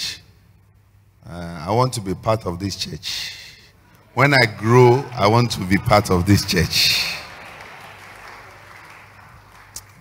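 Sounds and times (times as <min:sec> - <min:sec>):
faint applause: 0:04.0 - 0:10.0.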